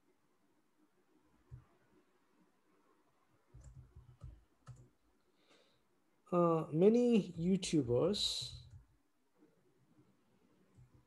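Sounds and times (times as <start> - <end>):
computer keyboard keystrokes: 3.6 - 4.9.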